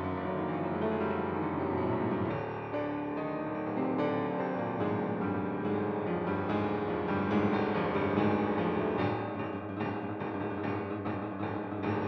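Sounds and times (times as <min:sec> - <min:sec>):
piano music: 0:00.0 - 0:09.4.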